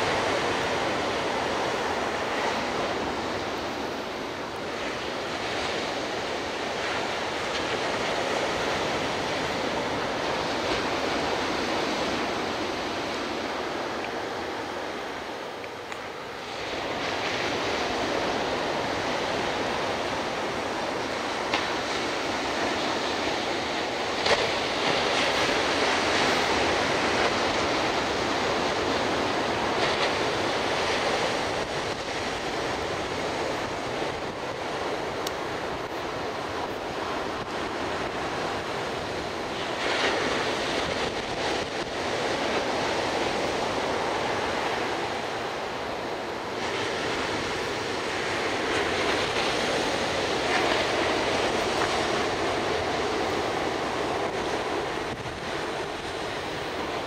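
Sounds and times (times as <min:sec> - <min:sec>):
surf breaking on beach: 0:00.0 - 0:57.0
wind gusting on microphone: 0:00.0 - 0:57.0.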